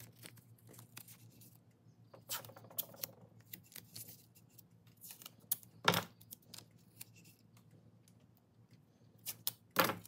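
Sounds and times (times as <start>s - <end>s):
tape crackling: 0.0s - 7.7s.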